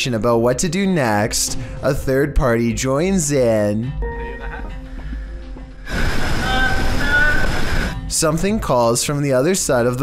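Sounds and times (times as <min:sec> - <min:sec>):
rush of noise: 0:05.8 - 0:08.0.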